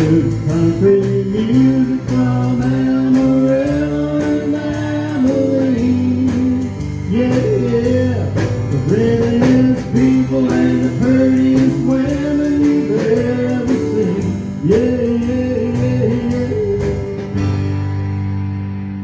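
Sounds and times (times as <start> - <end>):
live country band playing: 0.0 - 19.0.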